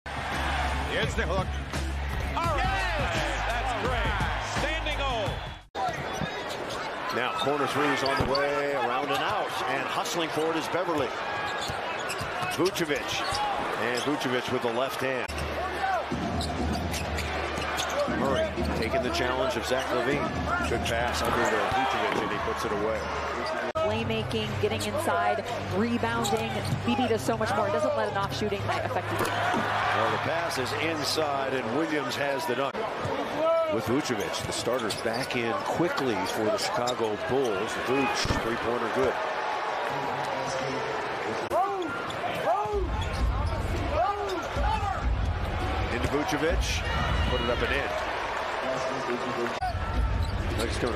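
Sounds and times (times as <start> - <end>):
crowd noise: 0.1 - 50.9
sneakers squeaking on court: 5.4 - 9.5, 11.0 - 14.3, 15.3 - 18.9, 26.0 - 27.0, 34.2 - 35.4, 36.6 - 37.9, 41.8 - 44.6, 49.9 - 50.9.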